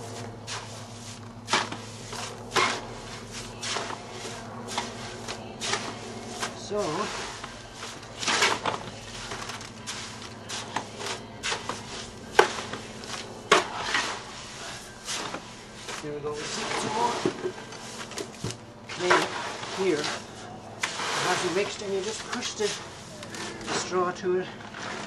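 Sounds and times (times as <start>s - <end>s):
fork scraping clay and straw: 0.0s - 18.1s, 18.9s - 24.0s.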